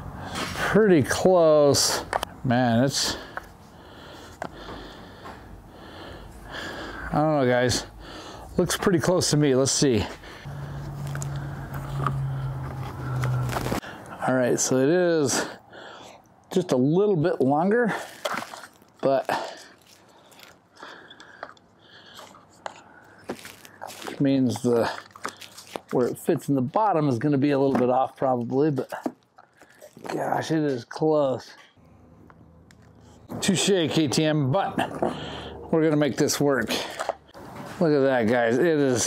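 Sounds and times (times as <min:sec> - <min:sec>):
man breathing through nose: 0:03.1 - 0:07.2, 0:07.9 - 0:08.6, 0:10.1 - 0:14.2, 0:15.5 - 0:16.3, 0:19.3 - 0:23.8, 0:35.0 - 0:35.7
plastic scraping against plastic: 0:10.8 - 0:13.8.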